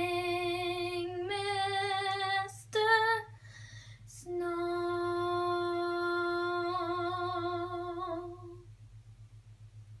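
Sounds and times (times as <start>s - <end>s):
girl singing a long note: 0.0s - 3.4s, 4.1s - 8.7s
faint low hum: 0.0s - 10.0s.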